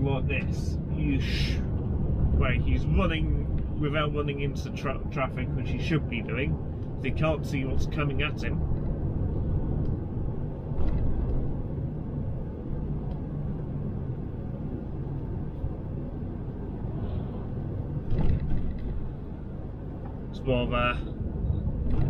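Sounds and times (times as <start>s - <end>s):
road noise: 0.0s - 22.0s
truck engine rumble: 0.0s - 22.0s.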